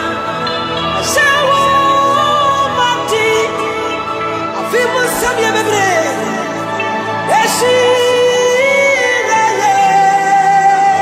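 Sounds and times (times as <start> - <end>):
musical accompaniment: 0.0 - 11.0
woman singing gospel: 0.1 - 6.6.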